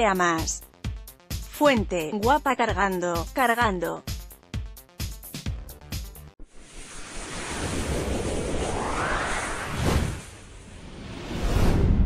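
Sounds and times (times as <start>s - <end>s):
background music with a beat: 0.1s - 6.4s
whoosh sound effect: 6.5s - 12.0s.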